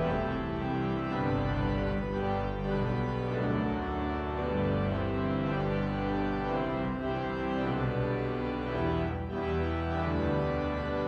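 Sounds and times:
organ playing a hymn: 0.0s - 11.0s.

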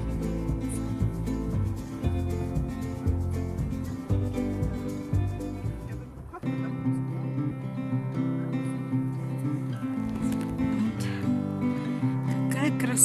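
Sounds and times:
acoustic guitar strummed and plucked: 0.0s - 13.0s.

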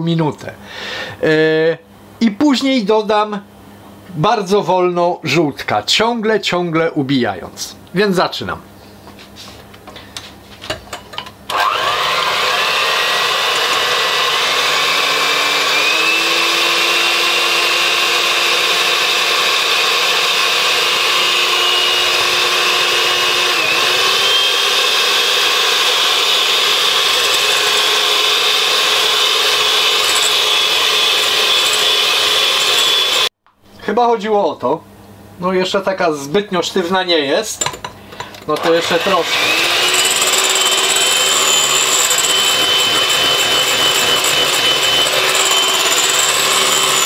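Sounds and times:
electric mixer motor whine: 11.5s - 33.3s, 38.6s - 47.0s.

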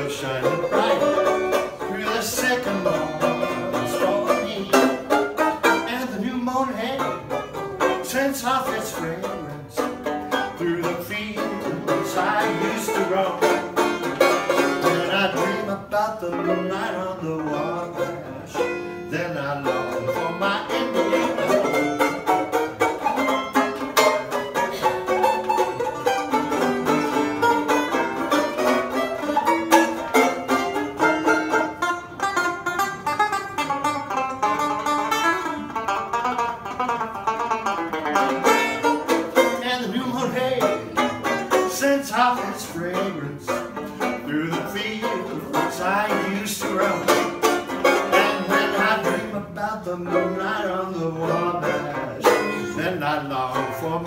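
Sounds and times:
banjo picking: 0.0s - 54.0s.

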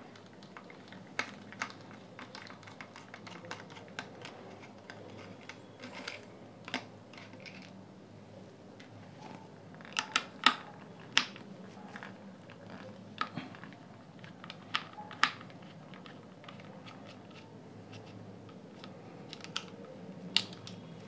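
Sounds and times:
plastic parts handled: 0.0s - 7.8s, 8.8s - 21.0s.

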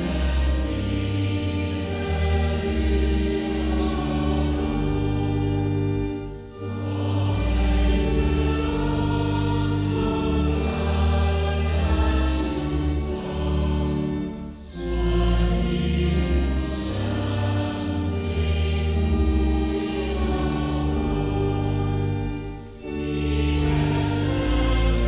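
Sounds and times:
congregation singing a hymn: 0.0s - 25.0s
organ accompaniment: 0.0s - 25.0s.

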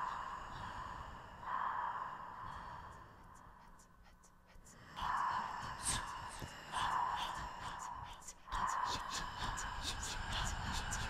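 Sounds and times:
person whispering: 0.0s - 0.8s, 1.4s - 11.0s.

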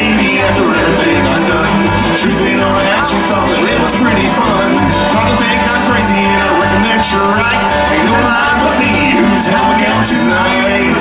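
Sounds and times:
acoustic guitar: 0.0s - 11.0s
banjo: 0.0s - 11.0s
bluegrass band playing: 0.0s - 11.0s
upright bass: 0.0s - 11.0s.

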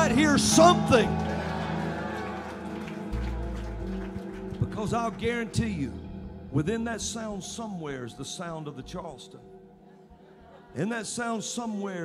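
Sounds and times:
deep bass note: 3.1s - 7.6s.

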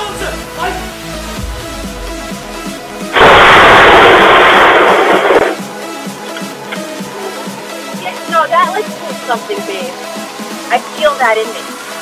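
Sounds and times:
distorted thunderclap: 3.1s - 5.7s.

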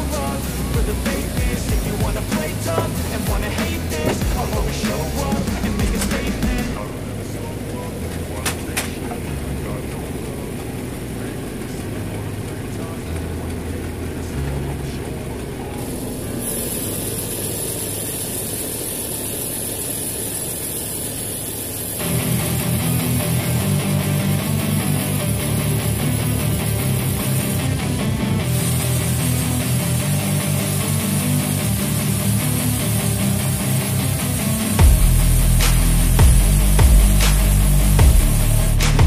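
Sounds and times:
background music: 0.0s - 16.7s, 22.0s - 39.0s
rock music with electric guitar: 0.0s - 16.8s, 21.9s - 39.0s
band sawmill running: 0.0s - 39.0s
high hiss: 0.0s - 39.0s.

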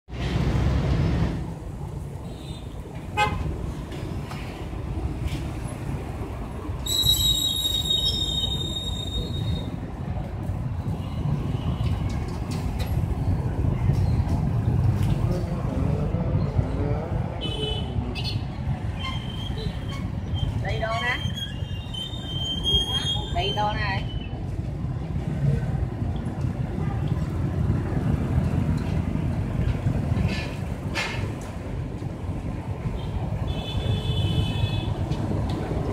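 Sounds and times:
street traffic rumble: 0.1s - 35.9s
vehicle horn: 3.2s - 3.4s.

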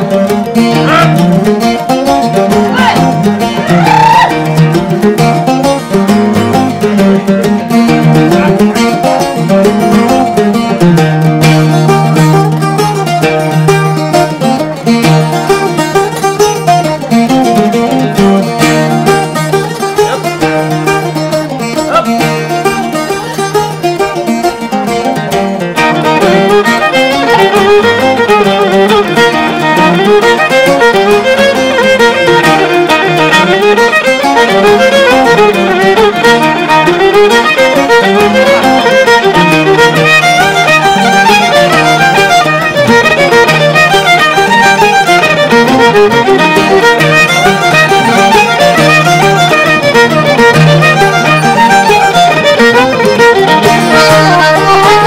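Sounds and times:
fiddle playing jigs: 0.0s - 55.0s
strummed acoustic guitar: 0.0s - 55.0s.

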